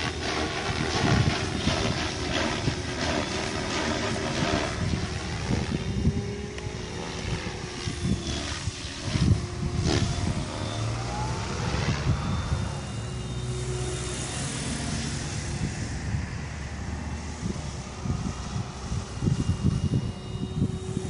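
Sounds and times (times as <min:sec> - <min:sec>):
rc helicopter hum and whine: 0:00.0 - 0:21.0
wind rumble on microphone: 0:00.0 - 0:21.0.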